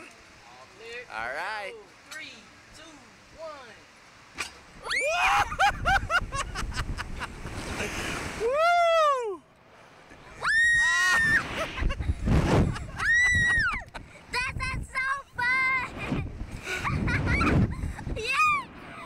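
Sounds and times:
wind rushing over microphone: 4.8s - 8.5s, 11.1s - 19.0s.

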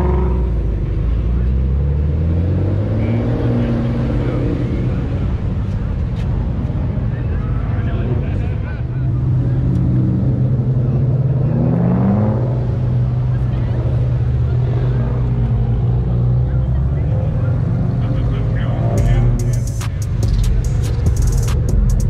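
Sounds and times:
sports car engines driving past: 0.0s - 22.0s.

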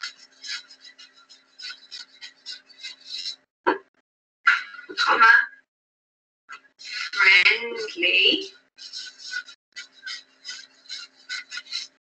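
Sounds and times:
marker scratching on paper: 0.0s - 3.5s, 6.8s - 12.0s.

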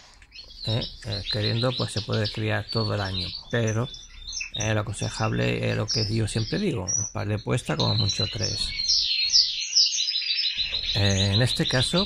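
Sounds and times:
cage birds twittering: 0.0s - 12.0s.

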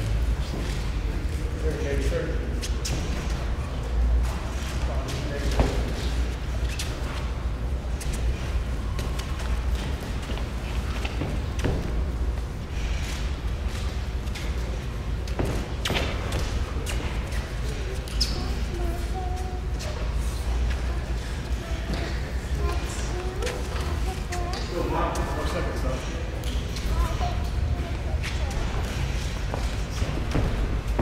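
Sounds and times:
background chatter: 14.0s - 31.0s
feet thudding on ring canvas: 29.5s - 31.0s.

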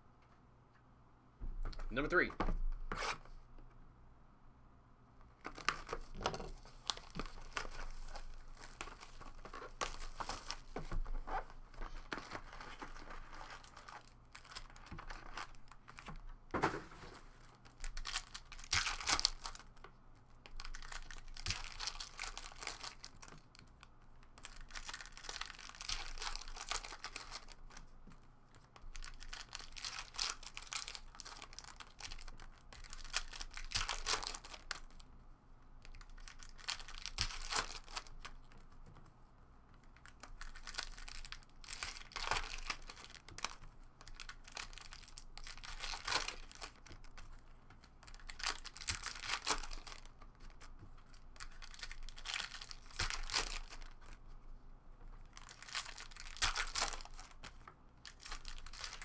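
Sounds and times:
plastic wrapping tearing and crinkling: 5.4s - 27.9s, 28.6s - 35.0s, 35.8s - 38.7s, 39.9s - 54.2s, 55.2s - 59.0s.

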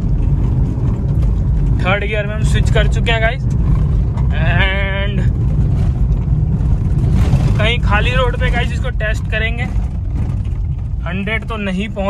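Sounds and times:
diesel engine accelerating: 0.0s - 12.0s
tyre and road noise: 0.0s - 12.0s.

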